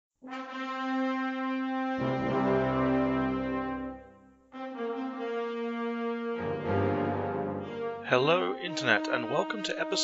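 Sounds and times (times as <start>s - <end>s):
held brass note: 0.2s - 10.0s.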